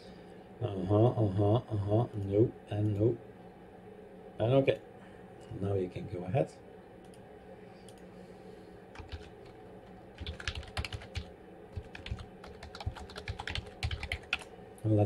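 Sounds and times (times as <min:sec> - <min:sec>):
computer keyboard typing: 0:09.0 - 0:14.5.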